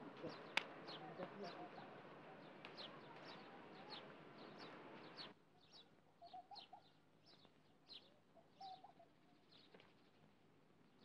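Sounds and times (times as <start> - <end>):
small birds chirping: 0.0 - 10.3.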